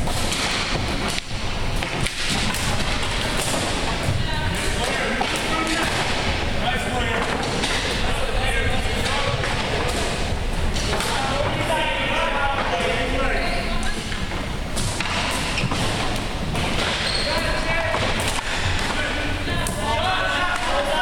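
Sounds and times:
sticks and ball knocking on gym floor: 0.0 - 4.2
players' voices echoing: 0.0 - 21.0.

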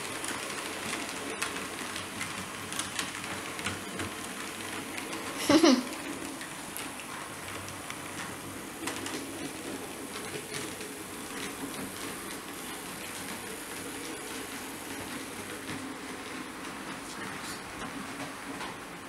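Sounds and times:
wheels clicking over rail joints: 0.0 - 19.0.

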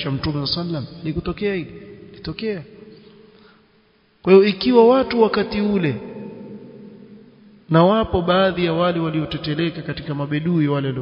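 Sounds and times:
man speaking: 0.0 - 2.7, 4.2 - 6.8, 7.7 - 11.0.

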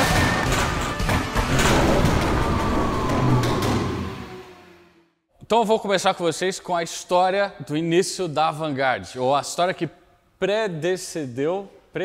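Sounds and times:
music: 0.0 - 5.2
car engine: 1.4 - 5.1.

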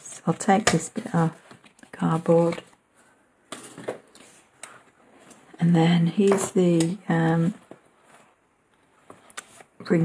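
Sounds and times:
planner soft clicks and rustles: 7.6 - 9.8.

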